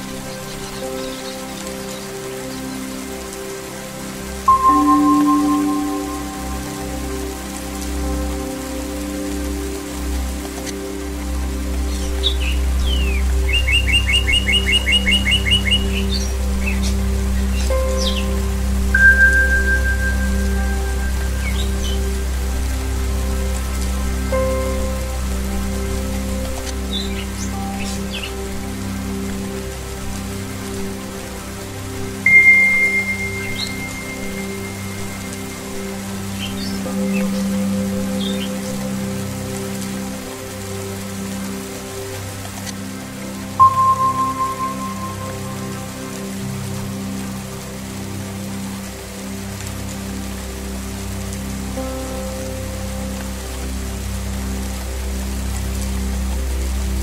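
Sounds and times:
low musical drone: 0.0s - 57.0s
rain pattering: 0.0s - 57.0s
singing bowl ringing: 4.5s - 7.2s, 19.0s - 21.1s, 32.3s - 35.1s, 43.6s - 45.7s.

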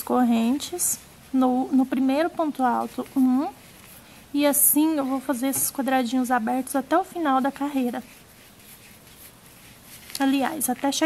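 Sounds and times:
faint rustling of twine: 0.0s - 11.0s.

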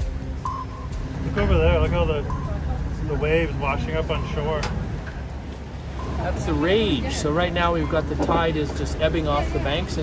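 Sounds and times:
wind rumble: 0.0s - 7.6s
rough seas breaking: 0.0s - 10.0s.

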